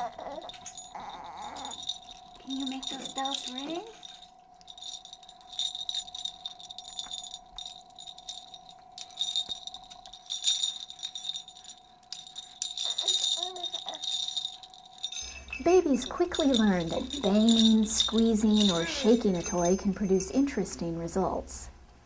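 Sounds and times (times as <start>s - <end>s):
baby toy bells jingling: 0.0s - 21.0s.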